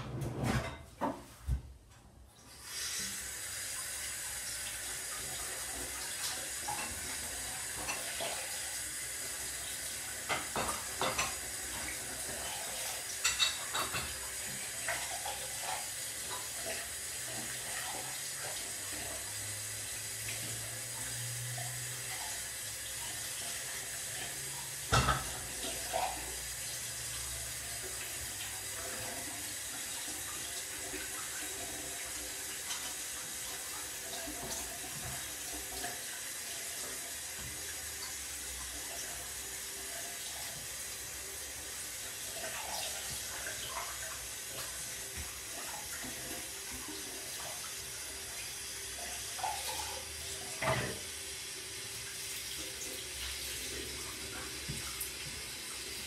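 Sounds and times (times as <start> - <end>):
water running: 2.2 - 56.0.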